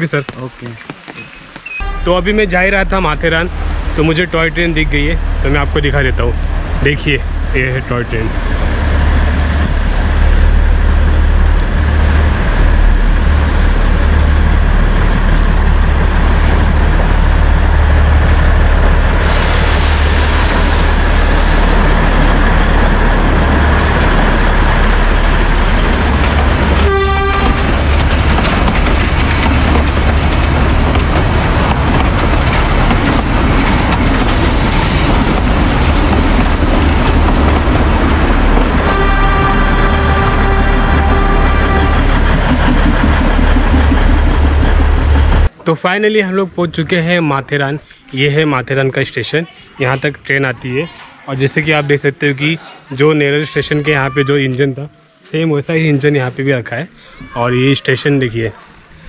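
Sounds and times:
train horn toot: 0:01.8 - 0:02.3, 0:26.8 - 0:27.7, 0:38.8 - 0:42.2
diesel train rumbling past: 0:01.8 - 0:45.6.

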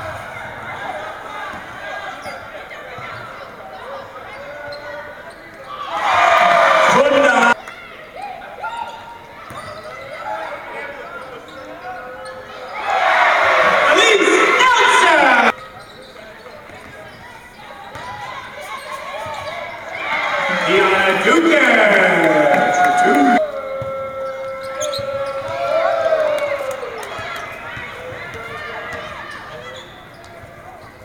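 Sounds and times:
crowd cheering: 0:05.7 - 0:07.6, 0:12.7 - 0:15.6, 0:19.7 - 0:29.6
players' voices: 0:05.7 - 0:07.6, 0:10.4 - 0:15.6, 0:18.1 - 0:29.8.

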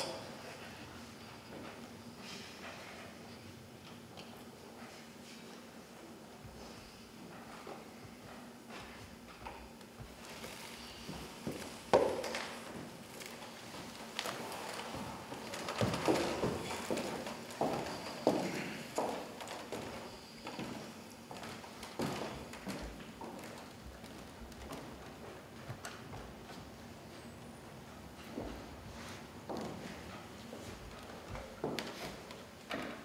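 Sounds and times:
heavy footsteps on stage floor: 0:07.3 - 0:26.8.

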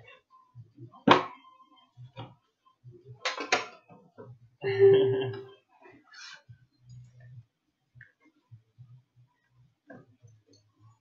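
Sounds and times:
man laughing: 0:04.6 - 0:05.5.

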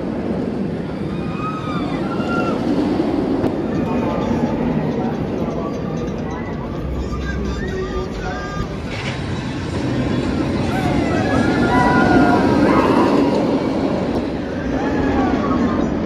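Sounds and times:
roller coaster track rumble: 0:00.0 - 0:16.0
people's voices: 0:00.3 - 0:16.0
riders shouting: 0:10.6 - 0:13.6.

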